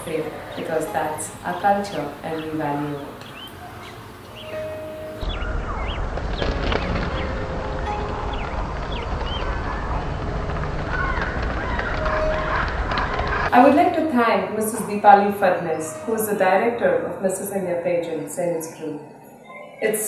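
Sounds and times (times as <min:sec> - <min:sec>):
birds chirping: 0:00.0 - 0:13.8, 0:18.4 - 0:20.0.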